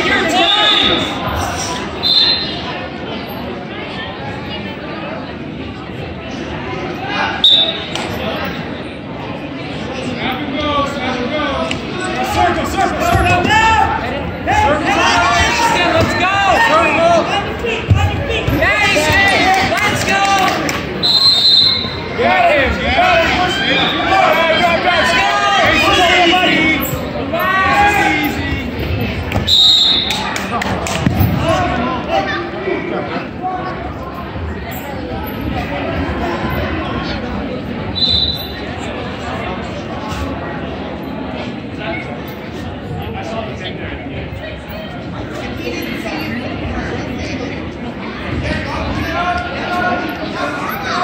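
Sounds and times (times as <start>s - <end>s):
voices in a gym: 0.0s - 51.0s
referee's whistle: 0.4s - 1.2s, 2.0s - 2.7s, 7.4s - 8.0s, 21.0s - 22.1s, 29.4s - 30.2s, 37.9s - 38.6s.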